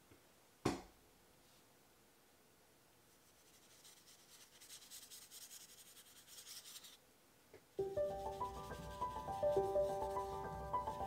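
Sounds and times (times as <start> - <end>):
brush scrubbing on paper: 3.1 - 7.0, 8.1 - 11.0.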